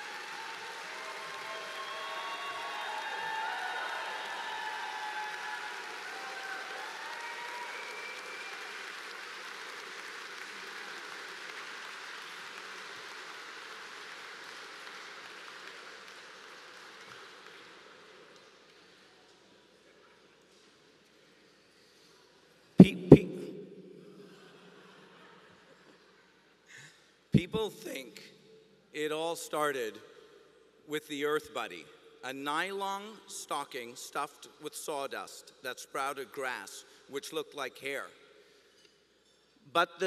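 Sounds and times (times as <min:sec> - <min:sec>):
audience cheering: 0:00.0 - 0:08.7
audience applauding: 0:00.0 - 0:17.8.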